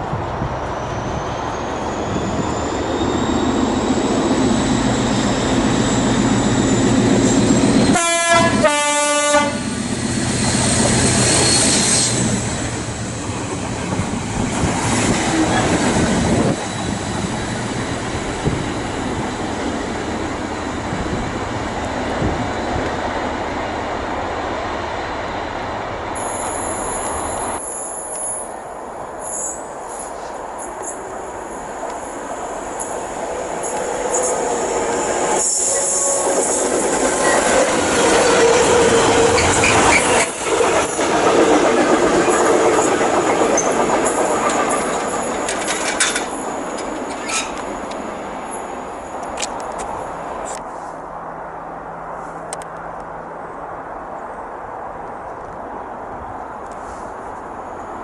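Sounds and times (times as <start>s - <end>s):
freight train rumbling past: 0.0s - 55.0s
high-pitched wheel squeal: 0.7s - 8.0s, 9.6s - 12.7s
locomotive horn blasts: 7.9s - 9.6s
wheels clicking over rail joints: 36.5s - 48.0s.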